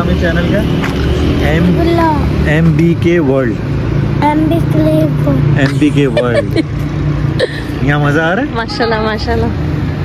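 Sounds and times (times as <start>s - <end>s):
voices talking: 0.0s - 9.7s.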